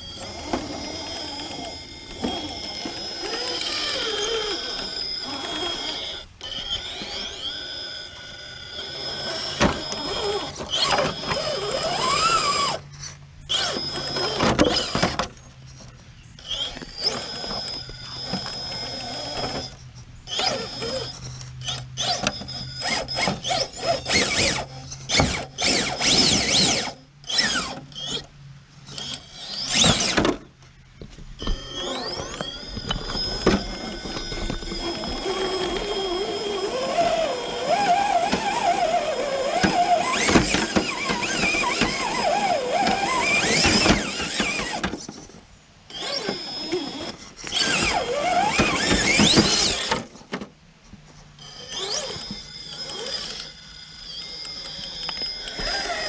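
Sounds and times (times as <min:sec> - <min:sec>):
electric motor whining: 0:00.0 - 0:45.3, 0:45.9 - 0:50.2, 0:51.4 - 0:56.0
tires and chassis scraping rock: 0:00.0 - 0:56.0.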